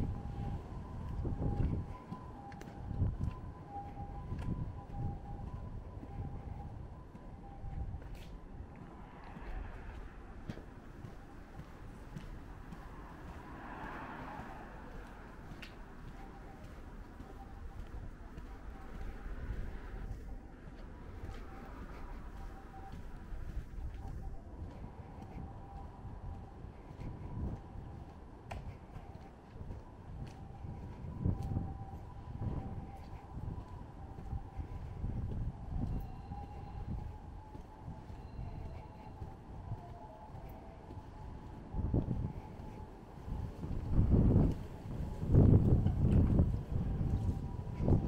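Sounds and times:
low street rumble: 0.0 - 48.0
low traffic hum: 0.0 - 48.0
vehicle passing: 8.8 - 17.5.

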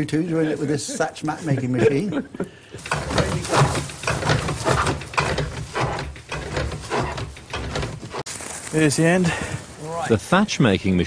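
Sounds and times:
machine clattering: 2.8 - 8.2
dry reed rustling: 2.8 - 10.0.

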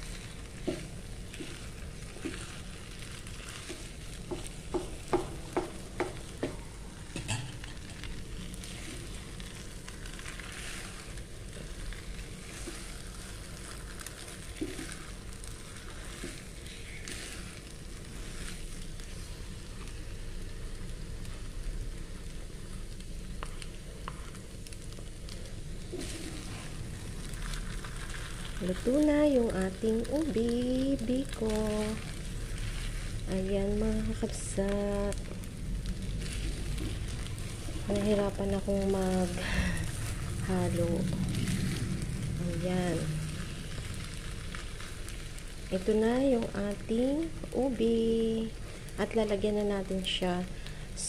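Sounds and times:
spatula stirring sticky rice: 0.0 - 50.1
soft sizzle: 0.0 - 51.0.

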